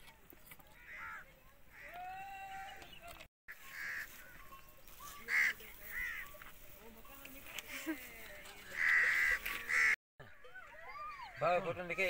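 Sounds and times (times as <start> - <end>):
bird calling: 8.6 - 11.6.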